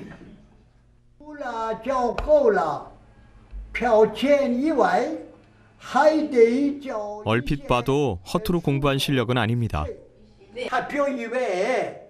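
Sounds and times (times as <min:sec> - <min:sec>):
elderly man reading aloud: 0:05.8 - 0:10.0.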